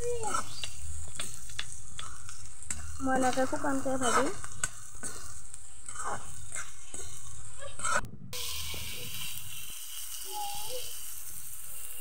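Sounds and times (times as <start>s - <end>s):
lidded pan hissing: 0.0s - 12.0s
potatoes sizzling in oil: 0.0s - 12.0s
ladle scraping a pan: 0.1s - 10.1s.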